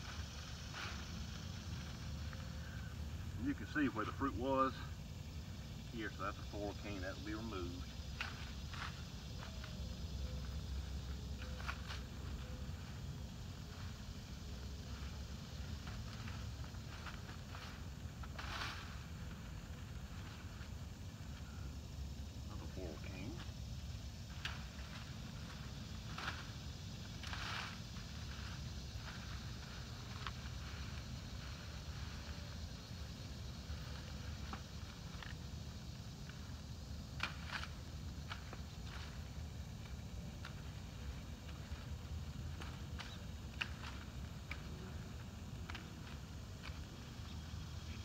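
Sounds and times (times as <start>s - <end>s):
canes and leaves rustling: 0.0s - 48.0s
steady low rumble: 0.0s - 48.0s.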